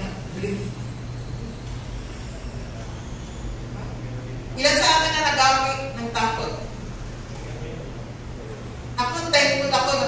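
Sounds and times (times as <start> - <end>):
sound system hum: 0.0 - 10.0.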